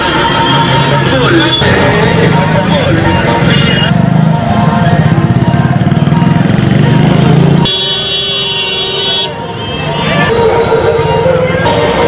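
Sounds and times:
motorcycle engine running: 2.1s - 8.7s
vehicle horn honk: 7.6s - 10.0s.

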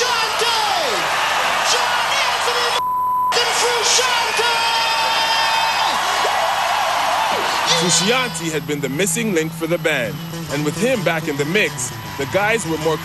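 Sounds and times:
man yelling: 0.0s - 6.1s, 7.5s - 8.6s
crowd cheering: 0.0s - 13.0s
short steady bleep: 2.8s - 3.4s
steady buzz: 7.6s - 13.0s.

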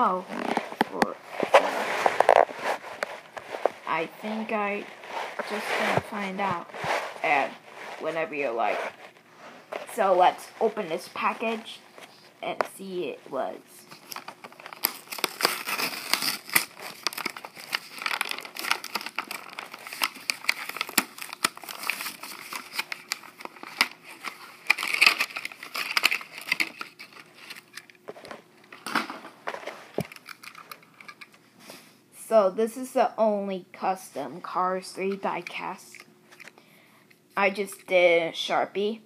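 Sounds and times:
plastic packaging crinkling: 0.2s - 9.2s, 13.8s - 31.3s.

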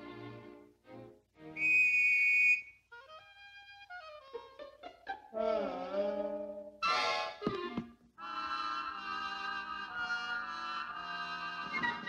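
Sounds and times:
orchestral cartoon music: 2.9s - 12.0s.

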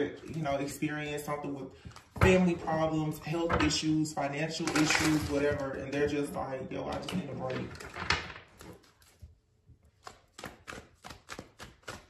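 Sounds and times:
cards tapping and clicking: 9.9s - 12.0s.

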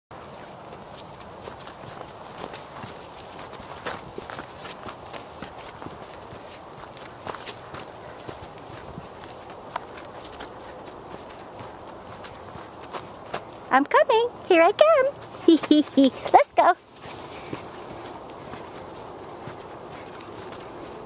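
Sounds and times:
footsteps on dirt trail: 0.1s - 21.0s.

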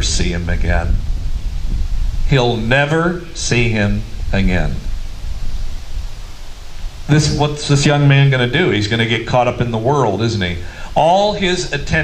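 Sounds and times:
low rumble: 0.0s - 9.0s
faint hiss: 0.0s - 12.0s.

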